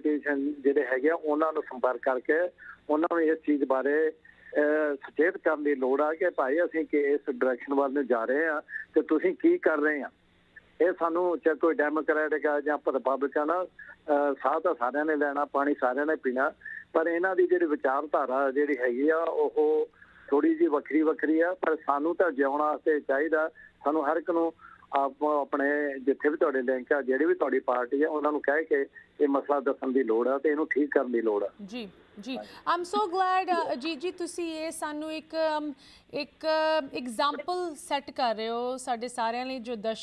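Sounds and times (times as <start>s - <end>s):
man talking over telephone: 0.0s - 34.2s.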